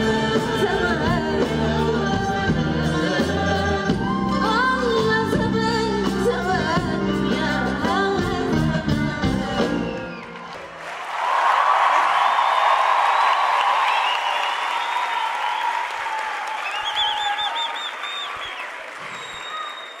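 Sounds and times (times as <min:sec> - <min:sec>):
music: 0:00.0 - 0:10.8
audience applauding and cheering: 0:09.6 - 0:20.0.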